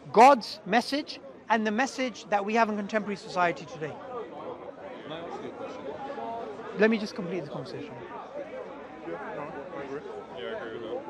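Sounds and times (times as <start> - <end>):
overlapping voices chattering: 0.0 - 11.0.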